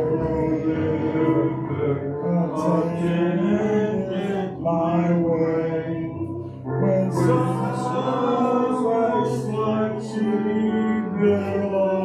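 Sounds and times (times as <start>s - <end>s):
congregation singing a hymn: 0.0s - 12.0s.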